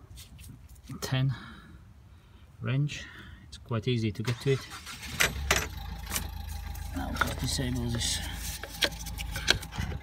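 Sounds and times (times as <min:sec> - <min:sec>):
rubbing and scraping on hose: 0:06.1 - 0:10.0.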